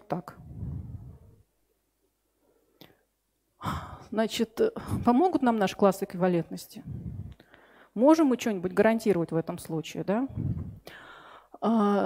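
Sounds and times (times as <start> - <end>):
woman speaking: 0.0 - 1.2, 3.7 - 7.3, 8.0 - 10.8
woman breathing: 0.3 - 1.4, 2.4 - 4.1, 4.8 - 5.2, 6.8 - 8.0, 10.3 - 11.6.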